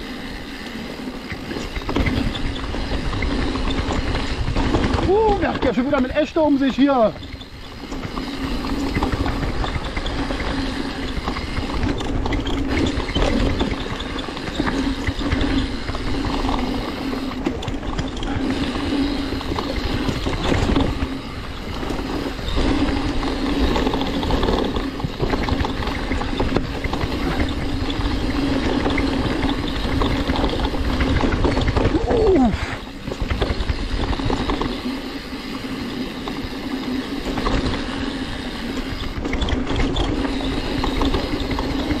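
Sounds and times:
bike rattling and knocking: 0.0s - 42.0s
bike tyres on dirt trail: 0.0s - 42.0s.

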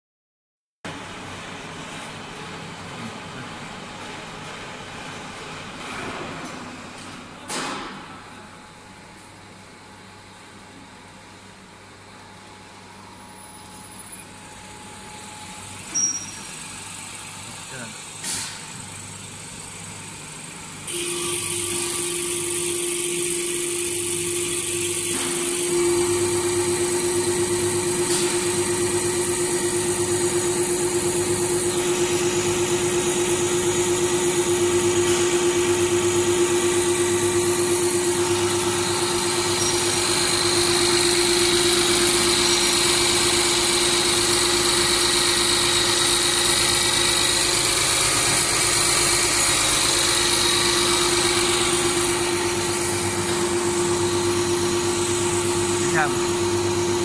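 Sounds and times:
pump test bench humming: 7.4s - 57.0s.

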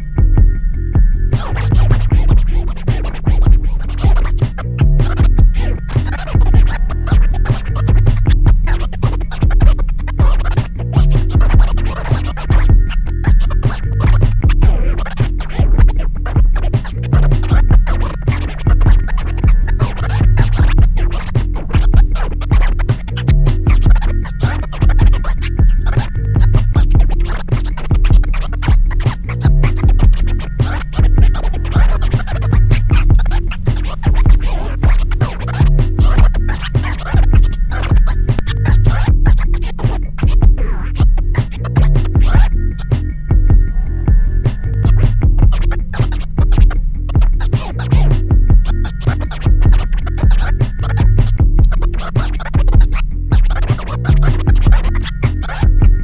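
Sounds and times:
deep bass hit: 0.0s - 51.9s
looping backing beat: 0.0s - 56.0s
turntable scratching: 0.0s - 56.0s.

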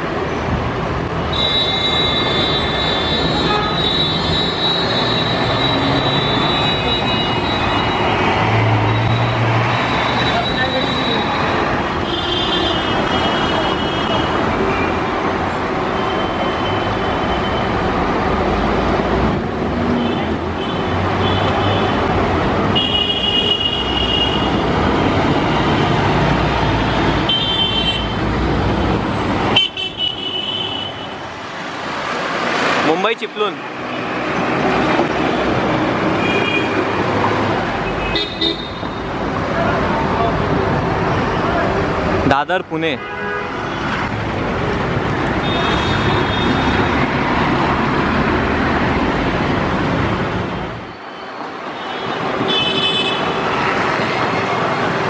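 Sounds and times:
road traffic: 0.0s - 55.0s
car horn honks: 1.3s - 7.9s.

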